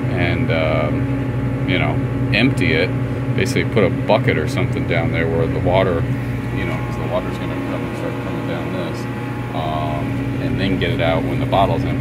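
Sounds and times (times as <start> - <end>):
vending machine humming: 0.0 - 12.0.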